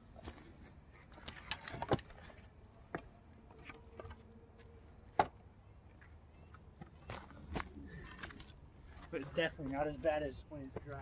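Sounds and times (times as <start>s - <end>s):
wood clattering: 1.0s - 5.4s.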